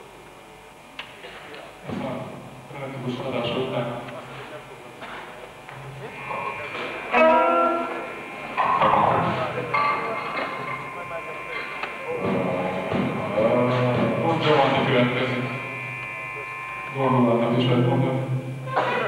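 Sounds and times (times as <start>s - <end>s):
held instrument tones: 5.0s - 19.0s.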